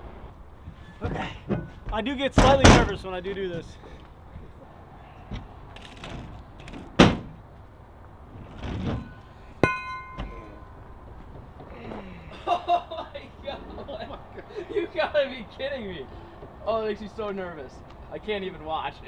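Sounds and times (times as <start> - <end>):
heavy weight thumping on truck: 1.0 - 3.0, 6.9 - 7.4, 8.6 - 10.8
metallic clink with ring: 9.6 - 10.8.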